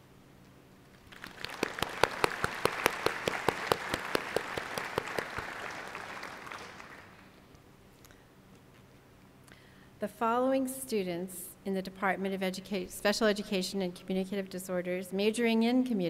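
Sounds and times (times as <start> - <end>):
loud claps close by: 1.0 - 7.3
audience applauding: 1.0 - 7.4.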